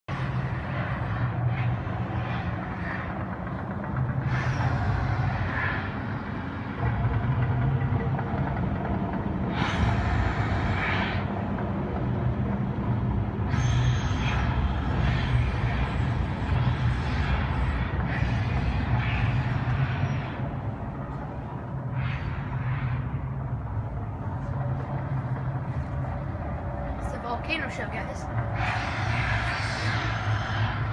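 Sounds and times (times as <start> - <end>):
low mechanical hum and rumble: 0.1 - 30.9.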